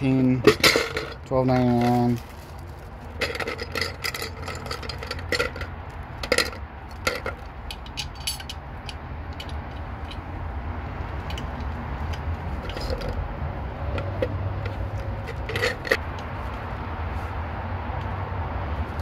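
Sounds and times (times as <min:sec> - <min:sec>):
plastic adapters clattering in bucket: 0:12.6 - 0:13.2.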